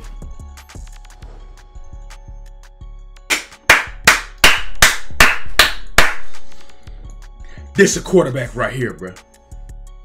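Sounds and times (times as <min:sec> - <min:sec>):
person clapping hands: 0:03.3 - 0:06.4.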